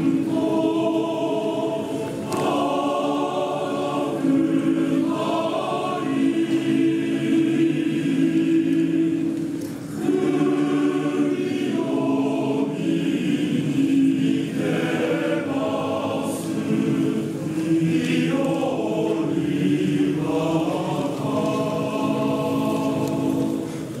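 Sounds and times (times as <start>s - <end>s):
male choir singing in harmony: 0.0s - 24.0s.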